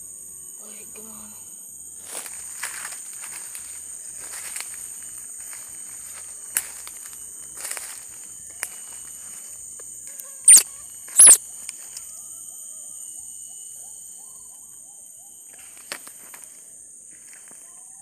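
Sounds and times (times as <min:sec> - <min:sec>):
insects droning: 0:00.0 - 0:18.0
baby monkey squealing: 0:10.4 - 0:11.4.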